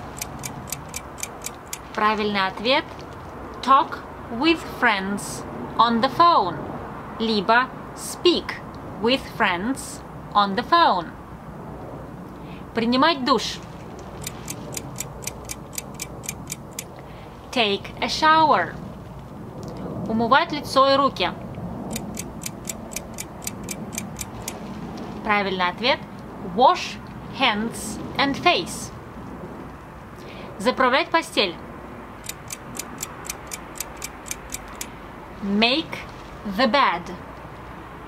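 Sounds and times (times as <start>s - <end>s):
clock ticking: 0.0s - 1.9s, 14.2s - 16.9s, 21.9s - 24.6s, 32.2s - 34.9s.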